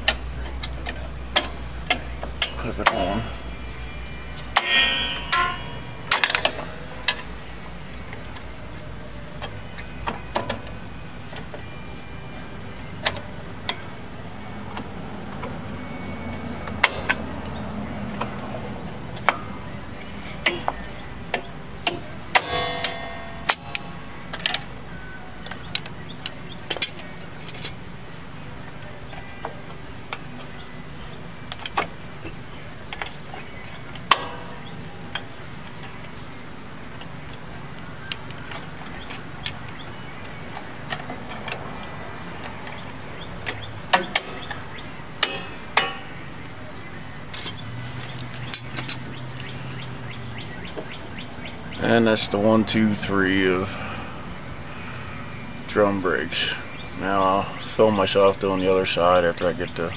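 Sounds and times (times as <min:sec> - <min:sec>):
metal scraping: 0:00.1 - 0:07.9
metallic clicks of brake springs: 0:47.3 - 0:49.5.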